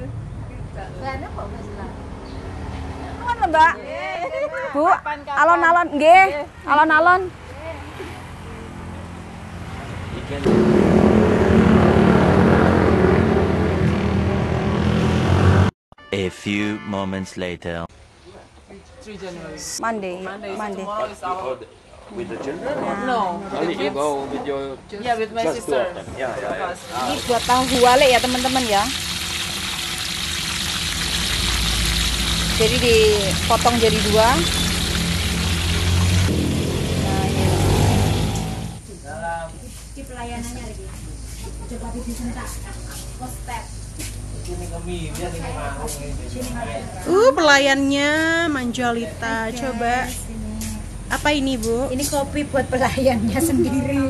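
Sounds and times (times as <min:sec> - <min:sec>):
vehicle engine running: 0:10.4 - 0:15.7, 0:26.8 - 0:39.0
food deep-frying in oil: 0:26.8 - 0:38.7.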